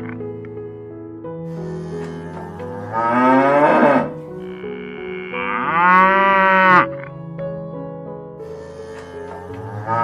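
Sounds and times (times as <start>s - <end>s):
soft background music: 0.0s - 10.0s
cow mooing: 1.8s - 6.9s, 8.8s - 10.0s.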